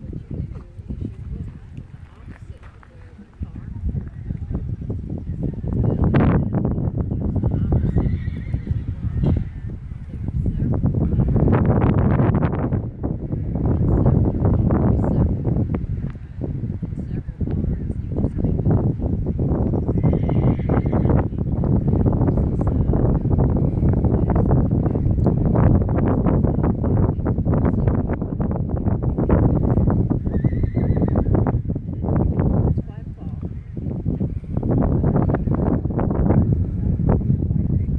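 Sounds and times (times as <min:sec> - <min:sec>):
wind buffeting microphone: 0:00.0 - 0:37.9
horse whinnying: 0:07.8 - 0:09.0, 0:20.0 - 0:21.1, 0:30.2 - 0:31.3.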